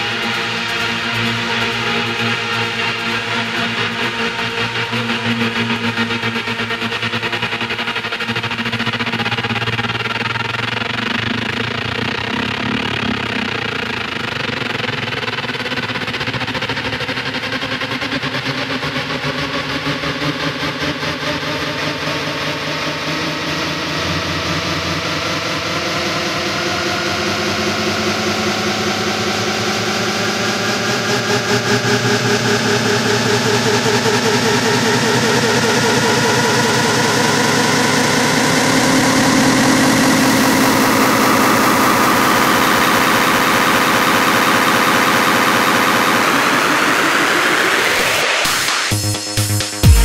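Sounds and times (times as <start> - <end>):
trance music with buzzing synth chord: 0.0 - 50.0.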